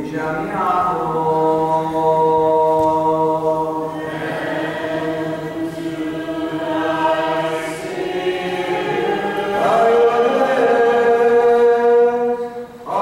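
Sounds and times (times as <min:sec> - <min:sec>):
voices chanting: 0:00.1 - 0:13.0.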